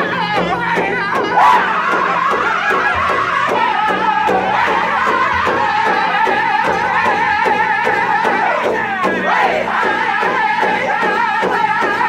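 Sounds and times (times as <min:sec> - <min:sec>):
group singing high-pitched in unison: 0:00.0 - 0:12.0
large drum struck with sticks: 0:00.0 - 0:12.0.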